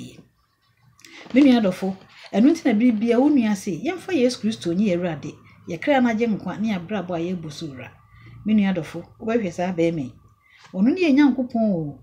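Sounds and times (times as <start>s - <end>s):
woman speaking: 0.0s - 0.3s, 1.1s - 12.0s.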